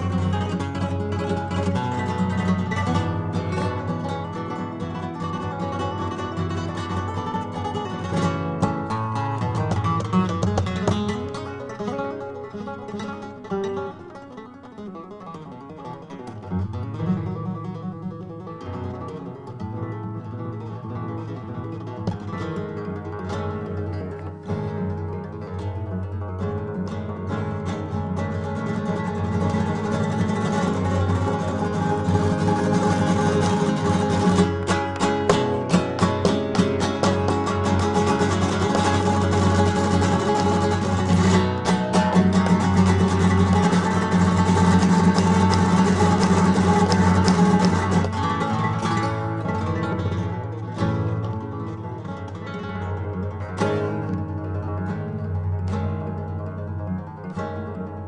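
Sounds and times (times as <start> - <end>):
solo flamenco guitar: 0.0 - 58.0.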